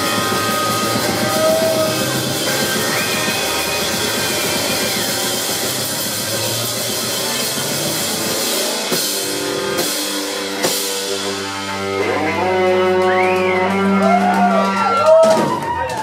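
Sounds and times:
drum kit: 0.0s - 16.0s
electric guitar: 0.0s - 16.0s.

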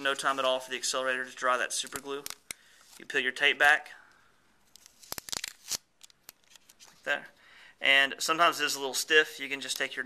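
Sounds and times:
packing tape peeling off paper: 4.7s - 7.0s.

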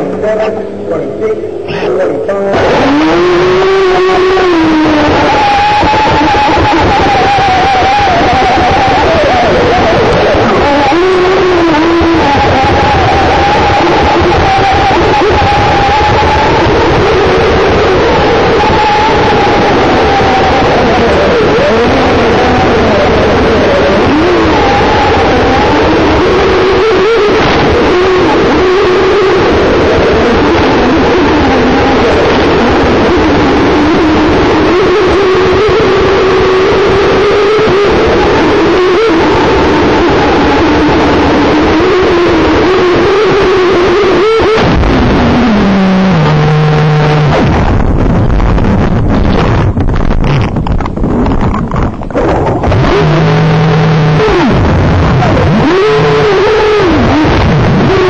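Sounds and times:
rushing noise: 2.5s - 58.0s
electric motor whining: 2.6s - 58.0s.

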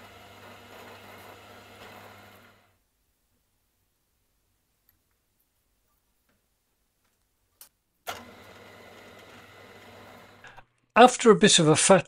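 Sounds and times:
electric motor hum: 0.0s - 2.8s, 8.1s - 10.6s.

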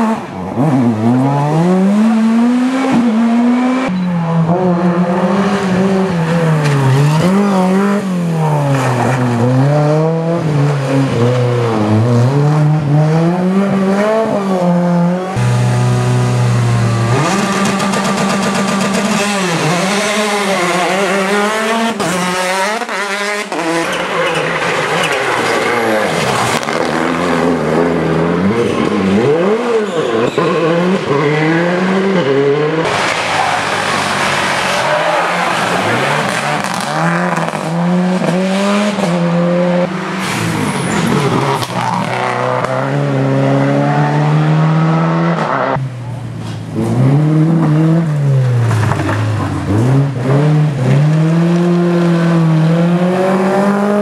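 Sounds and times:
rally car engines revving: 0.0s - 54.0s.

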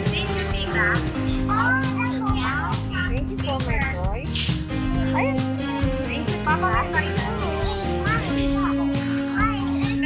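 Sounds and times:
young child talking: 0.0s - 3.2s, 6.6s - 10.0s
background music with steady beat: 0.0s - 10.0s.

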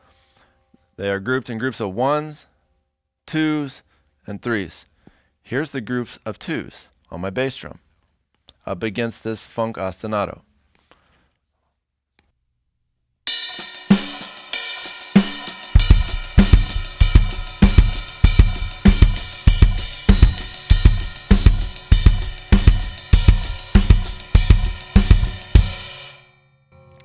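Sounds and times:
drum kit playing funk: 13.3s - 26.1s
cymbal ringing: 13.3s - 26.5s
bass drum strokes: 15.1s - 26.0s.

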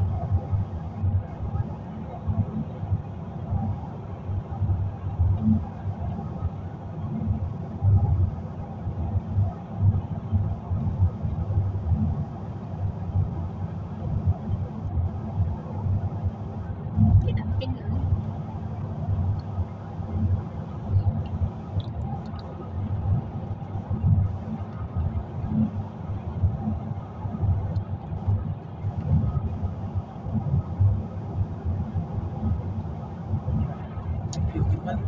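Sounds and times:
vehicle cabin road noise: 0.0s - 35.0s.

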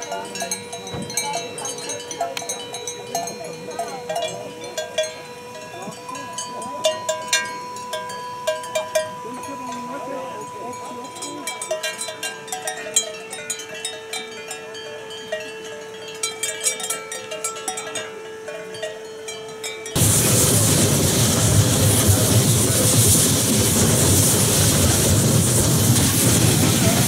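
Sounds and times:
cowbells clanking: 0.0s - 20.0s.

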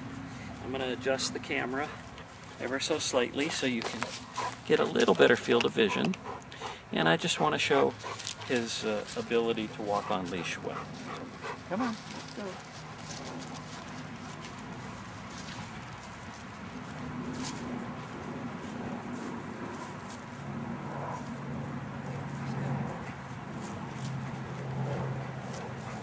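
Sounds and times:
footsteps on dry leaves: 0.0s - 5.2s, 7.7s - 26.0s.

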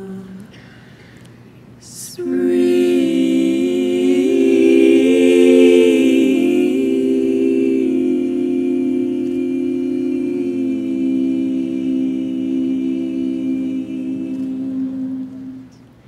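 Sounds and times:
women singing a cappella chord: 0.0s - 0.8s, 1.8s - 15.8s.

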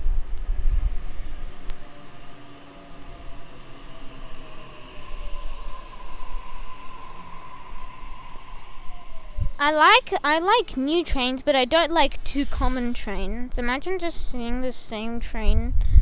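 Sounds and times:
electric train rumble and motor whine: 0.0s - 15.5s.

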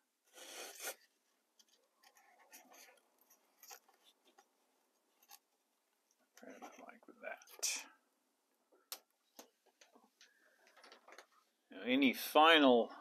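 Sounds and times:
scratchy rustles: 1.7s - 4.5s.

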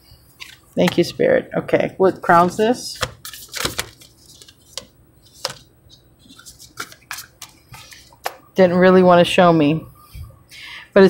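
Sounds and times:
cards clicking and flicking: 3.0s - 5.6s, 6.3s - 8.4s.

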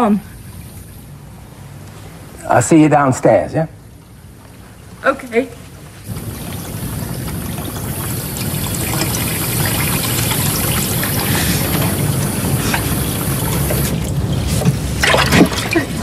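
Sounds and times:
water running from a tap: 6.1s - 15.8s.

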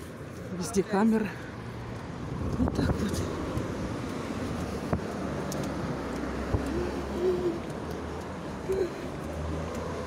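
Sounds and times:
cars passing on busy road: 0.0s - 10.0s.

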